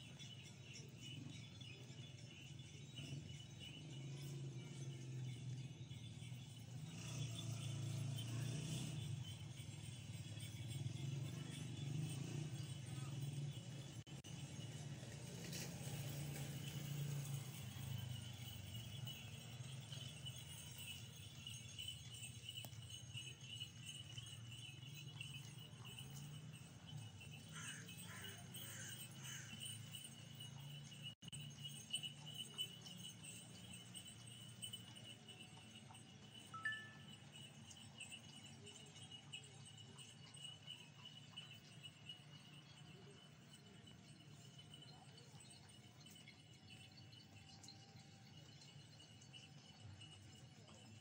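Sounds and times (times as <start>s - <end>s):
thin high-pitched tone: 36.5s - 37.2s.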